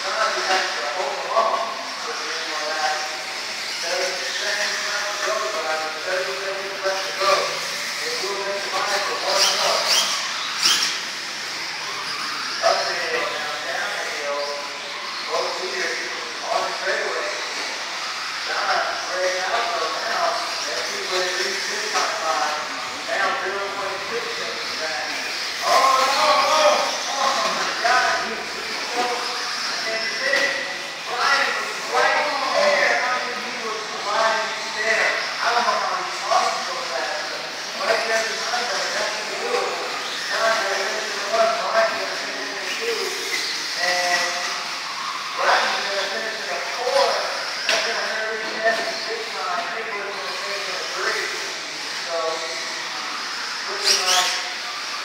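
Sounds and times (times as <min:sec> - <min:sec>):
indistinct voices talking: 0:00.0 - 0:55.0.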